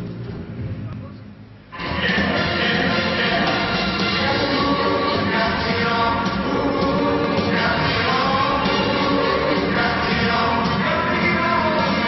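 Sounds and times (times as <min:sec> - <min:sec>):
music over sound system: 0:01.6 - 0:12.0.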